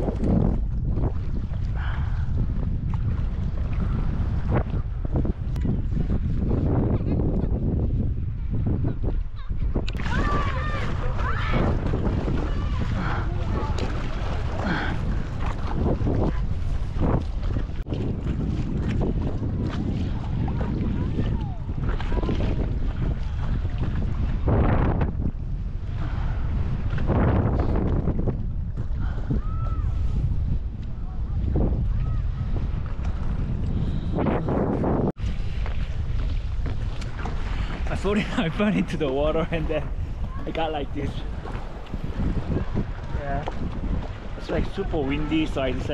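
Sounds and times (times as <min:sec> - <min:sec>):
choppy lake water: 0:00.0 - 0:45.9
water splashing at paddleboard: 0:00.0 - 0:45.9
wind buffeting microphone: 0:00.0 - 0:45.9.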